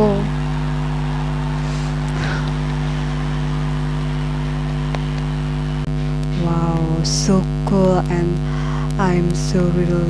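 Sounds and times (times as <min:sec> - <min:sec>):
low electrical buzzing hum: 0:00.0 - 0:10.0.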